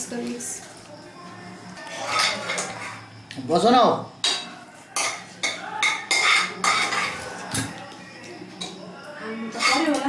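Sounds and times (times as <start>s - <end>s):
metal cookware clattering: 1.9s - 3.1s, 4.2s - 7.8s, 9.5s - 10.0s.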